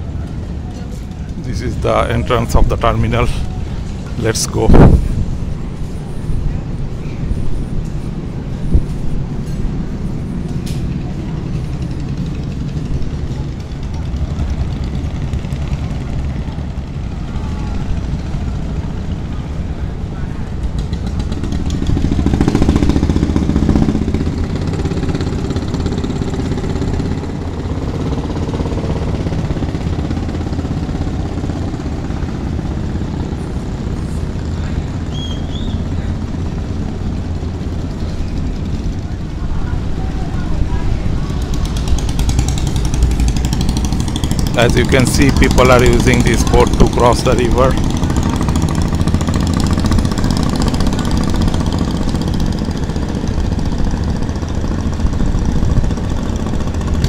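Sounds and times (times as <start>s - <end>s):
people's voices: 0.0s - 7.4s, 37.8s - 48.6s
boat engines droning: 0.0s - 57.0s.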